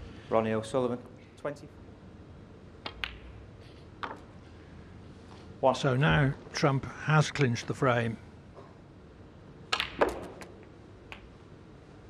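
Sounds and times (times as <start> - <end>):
cue tip striking ball: 2.8 - 3.4, 9.7 - 11.3
snooker balls clicking together: 2.8 - 3.4, 4.0 - 4.3, 9.7 - 11.4.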